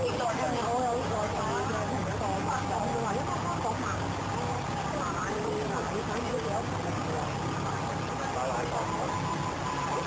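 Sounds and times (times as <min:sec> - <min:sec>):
indistinct voices talking: 0:00.0 - 0:10.0
steady low hum: 0:00.0 - 0:10.0.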